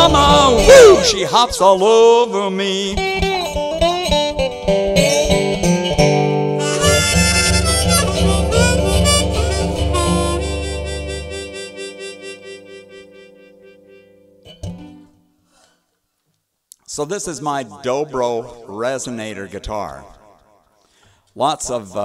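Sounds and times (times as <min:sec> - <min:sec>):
harmonica: 0:00.0 - 0:01.4, 0:03.0 - 0:15.2
resonator guitar: 0:00.0 - 0:15.4.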